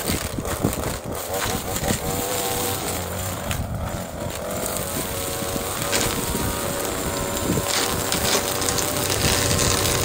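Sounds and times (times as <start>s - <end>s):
string trimmer cutting grass: 0.0s - 10.0s.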